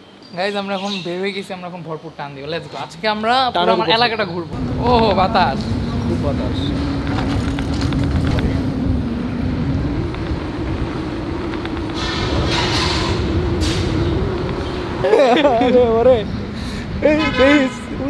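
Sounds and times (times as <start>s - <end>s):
hissy wind gusts: 0.0s - 18.0s
wind rumbling on microphone: 4.5s - 18.0s
electric scooter motor whining: 4.6s - 17.0s.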